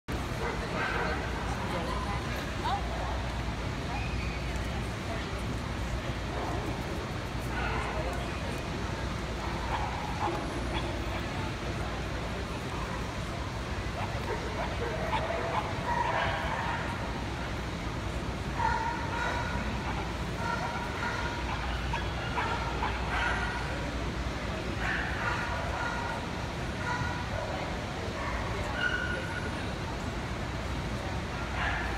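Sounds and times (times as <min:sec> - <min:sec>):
crowd chatter: 0:00.1 - 0:31.9
dog barking: 0:14.0 - 0:16.9, 0:18.6 - 0:23.6, 0:31.6 - 0:31.9.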